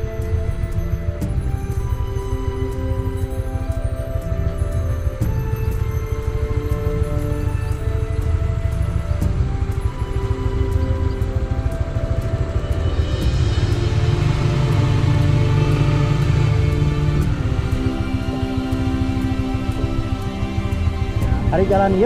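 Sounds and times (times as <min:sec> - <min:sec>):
background music with held notes: 0:00.0 - 0:22.0
low pulse: 0:00.0 - 0:22.0.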